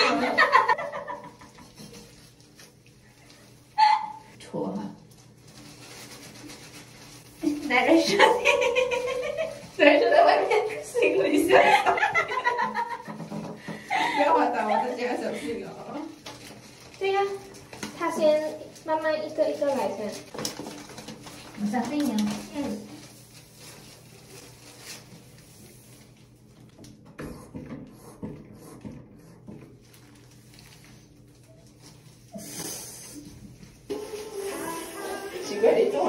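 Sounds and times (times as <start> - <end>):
women laughing: 0.0 - 1.7, 8.0 - 15.6.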